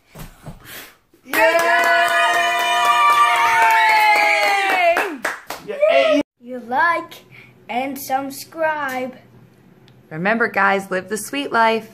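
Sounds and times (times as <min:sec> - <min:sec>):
fast clapping: 0:01.3 - 0:05.7
voices cheering: 0:01.3 - 0:06.3.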